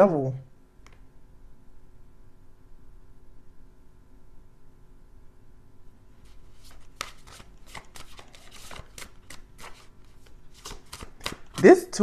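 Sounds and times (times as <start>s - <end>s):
cards being shuffled: 6.2s - 12.0s.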